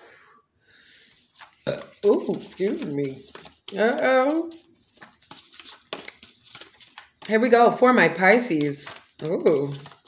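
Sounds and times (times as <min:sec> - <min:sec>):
cards being shuffled: 0:01.1 - 0:10.0.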